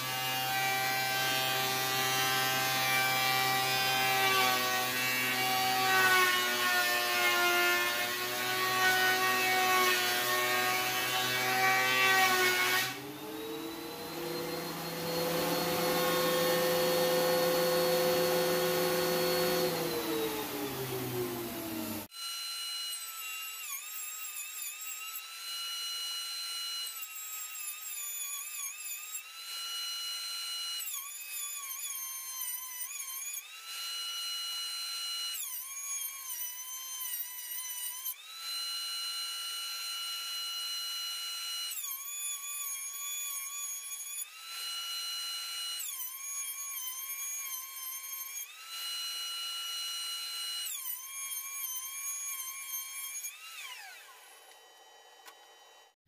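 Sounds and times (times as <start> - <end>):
thickness planer whining: 0.0 - 32.1, 33.0 - 56.0.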